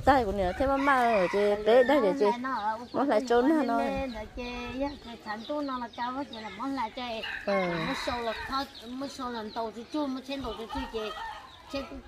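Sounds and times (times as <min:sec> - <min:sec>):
chickens clucking: 0:00.0 - 0:12.0
rooster crowing: 0:07.2 - 0:08.6.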